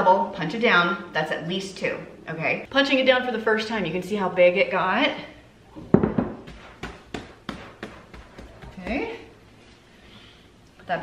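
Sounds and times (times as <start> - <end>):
glass bowl knocking on countertop: 5.9 - 6.6
dough punched by hand thumps: 5.9 - 9.1.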